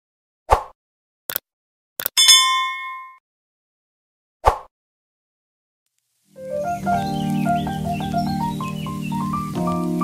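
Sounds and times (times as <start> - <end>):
bright bell ding: 2.2 - 3.2.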